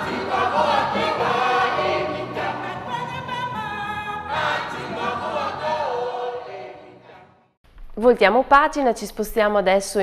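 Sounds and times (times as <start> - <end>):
choir singing lively song: 0.0 - 7.6.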